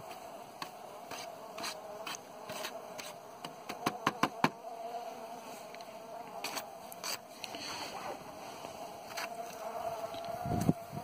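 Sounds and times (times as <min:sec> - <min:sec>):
honeybees buzzing: 0:00.0 - 0:11.0.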